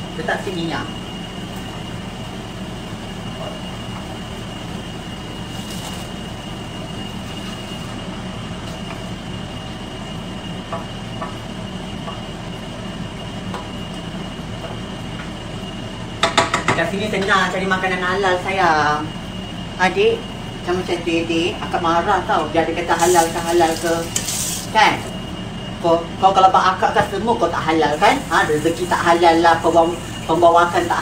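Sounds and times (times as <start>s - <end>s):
appliance whirring hum: 0.0s - 31.0s
faint high whine: 0.0s - 31.0s.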